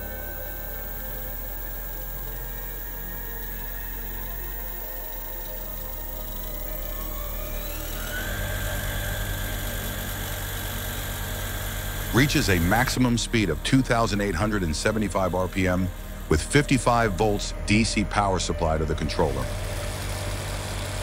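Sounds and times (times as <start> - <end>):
background music: 0.0 - 21.0
electric motor whine rising: 0.0 - 21.0.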